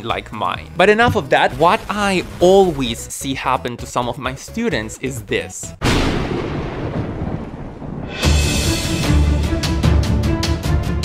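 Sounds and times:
thunderclap rumbling: 5.8s - 8.9s.

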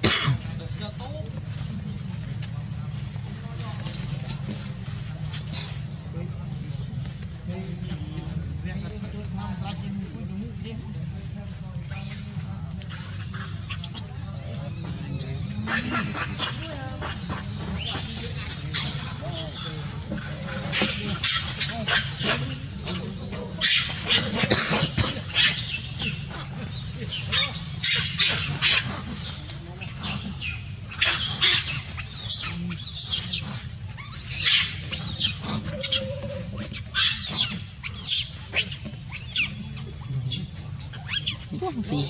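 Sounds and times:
harsh monkey calls: 0.0s - 9.9s, 11.8s - 42.0s
monkeys calling: 0.0s - 10.9s, 11.5s - 42.0s
indistinct background voices: 0.0s - 27.4s.

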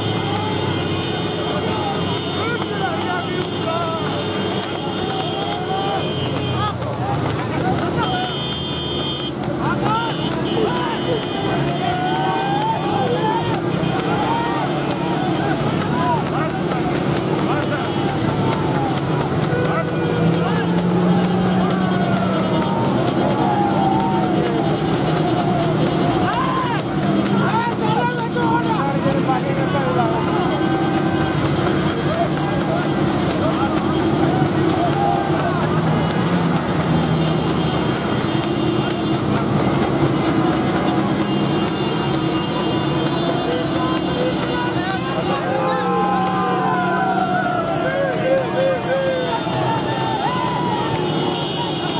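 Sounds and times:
men shouting: 0.0s - 51.9s
motorcycle and car engines running: 0.0s - 51.9s.

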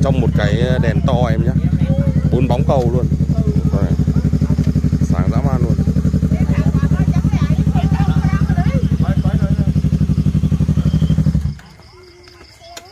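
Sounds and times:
motorcycle engine idling: 0.0s - 12.4s.

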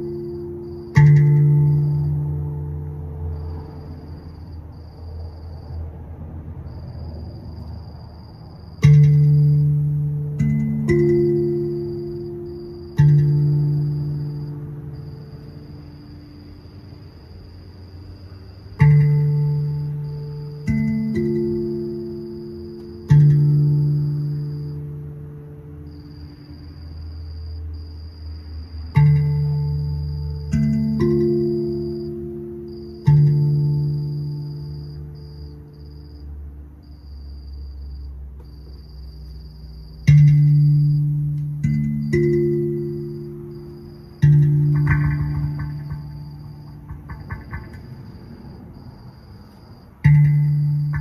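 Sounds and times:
steel tongue drum notes ringing: 0.0s - 4.8s, 8.7s - 36.6s, 39.9s - 51.0s.

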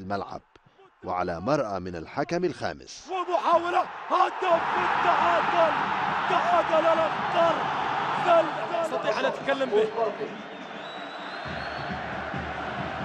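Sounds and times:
stadium crowd noise: 3.1s - 13.0s.

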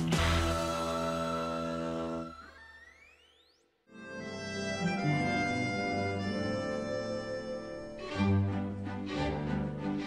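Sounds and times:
synthesized tone sweeping upward: 0.7s - 3.9s.

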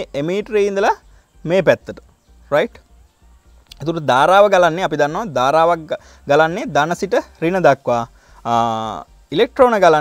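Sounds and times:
man lecturing: 0.0s - 2.8s, 3.7s - 10.0s.

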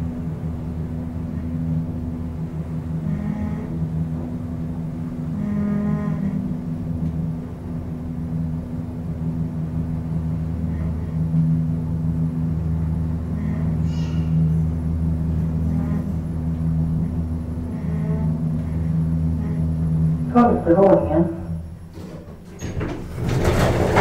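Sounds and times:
elevator hum: 0.0s - 24.0s
faint brief whine: 13.3s - 14.6s.

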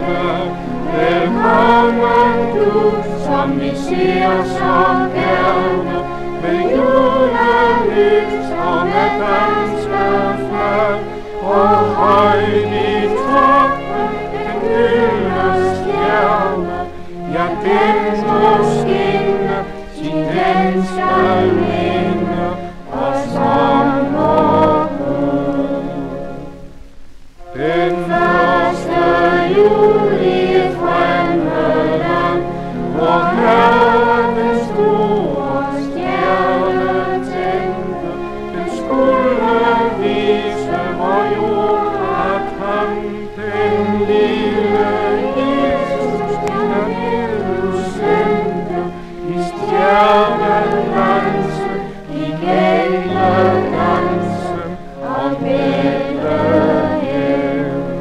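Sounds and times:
choir singing slow held notes: 0.0s - 58.0s
low sustained accompaniment: 0.0s - 58.0s.

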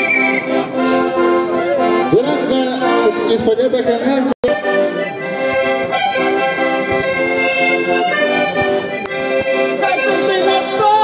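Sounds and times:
accordion playing: 0.0s - 11.0s.

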